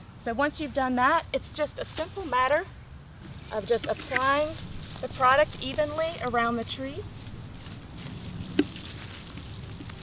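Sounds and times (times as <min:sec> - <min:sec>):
liquid pattering onto mulch: 0:01.8 - 0:10.0.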